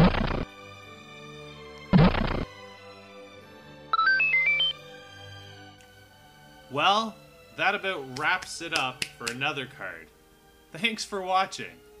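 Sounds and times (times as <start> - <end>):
faint background music: 0.0 - 12.0
electronic beep jingle: 3.9 - 4.8.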